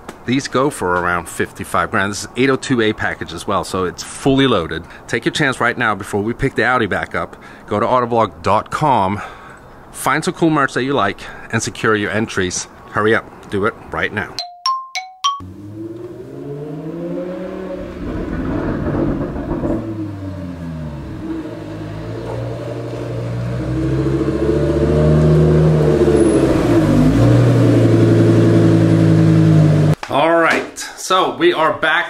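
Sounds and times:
sports car engine running: 0:15.4 - 0:30.0.

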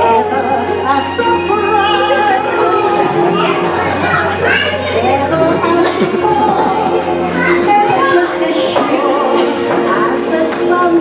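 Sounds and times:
background music: 0:00.0 - 0:11.0
children chattering: 0:00.0 - 0:11.0.

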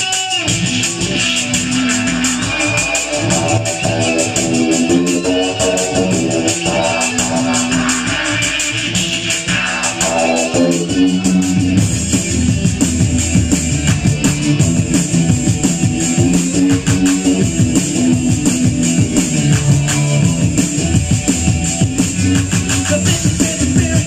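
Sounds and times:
electric guitar: 0:00.0 - 0:24.0
fast drum kit beat: 0:00.0 - 0:24.0
rock band playing: 0:00.0 - 0:24.0
cymbal strokes: 0:00.5 - 0:11.5.

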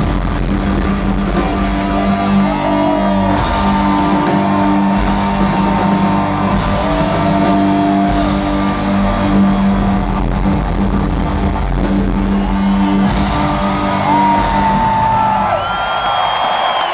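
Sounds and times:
rock band playing live: 0:00.0 - 0:16.4
crowd whooping and cheering: 0:01.2 - 0:16.9.

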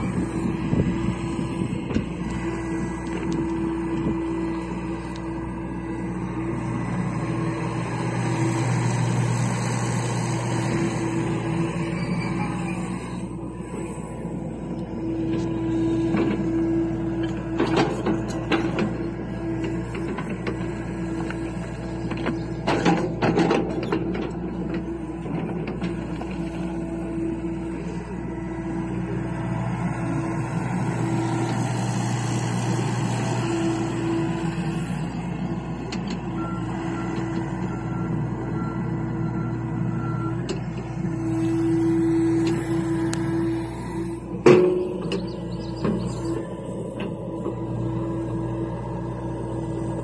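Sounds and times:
excavator diesel engine running: 0:00.0 - 0:50.0.

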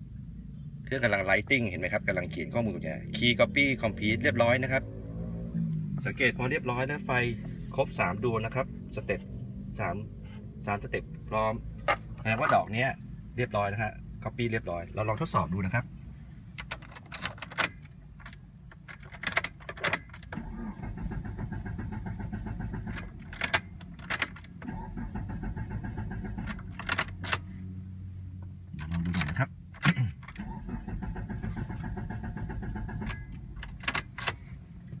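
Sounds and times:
car engine idling: 0:00.0 - 0:35.0
ignition clicks: 0:16.5 - 0:27.6, 0:28.4 - 0:35.0
key fob jangling: 0:16.6 - 0:20.3, 0:26.4 - 0:27.5.

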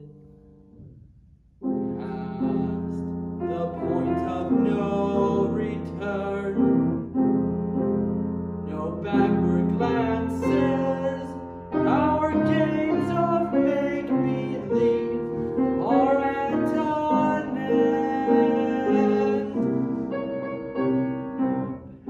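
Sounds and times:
grand piano accompaniment: 0:00.0 - 0:22.0
man singing: 0:01.8 - 0:07.2, 0:08.6 - 0:20.0.

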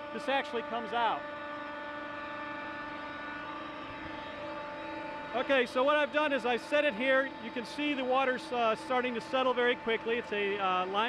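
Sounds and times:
machinery humming: 0:00.0 - 0:11.0.

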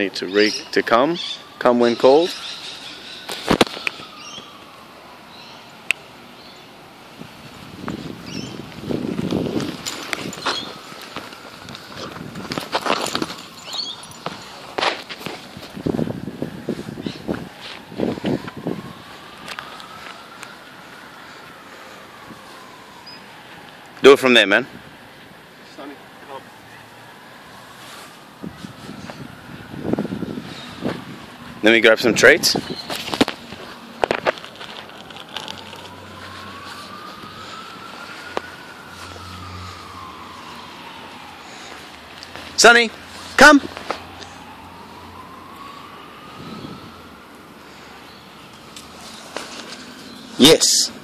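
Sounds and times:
distant siren wailing: 0:00.0 - 0:51.0
outdoor background noise: 0:00.0 - 0:51.0
footsteps on gravel: 0:07.8 - 0:18.6, 0:32.6 - 0:37.4.

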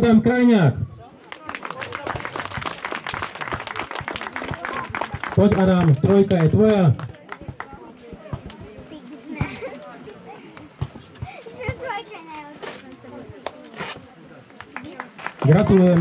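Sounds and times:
adults and children talking: 0:00.3 - 0:16.0.

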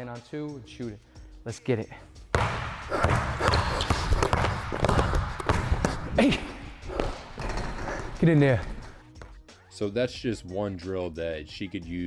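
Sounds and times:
basketball bouncing on hardwood: 0:02.3 - 0:06.2
sneaker footfalls: 0:02.3 - 0:09.4.

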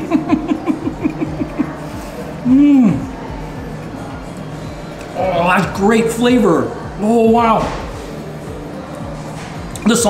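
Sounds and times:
man humming while chewing: 0:00.8 - 0:03.2.

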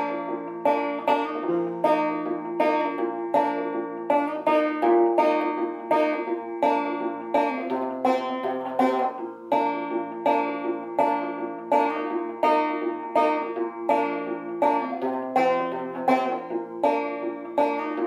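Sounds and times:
banjo plucking: 0:00.0 - 0:18.0.

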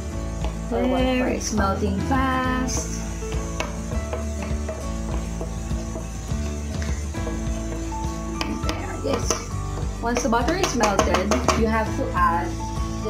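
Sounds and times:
background music: 0:00.0 - 0:13.0
butter sizzling in a pan: 0:00.0 - 0:13.0
wooden spoon scraping a pan: 0:02.6 - 0:11.6.

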